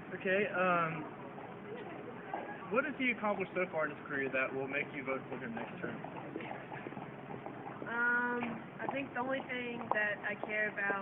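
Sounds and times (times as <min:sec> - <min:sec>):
woman saying um: 0:07.8 - 0:11.0.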